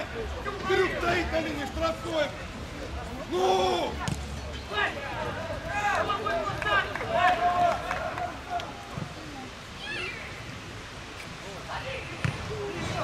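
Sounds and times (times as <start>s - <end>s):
players shouting: 3.3s - 8.9s.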